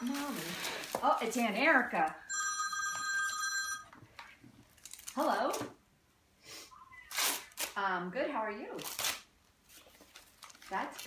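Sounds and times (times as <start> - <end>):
phone ringtone: 2.3 - 4.0.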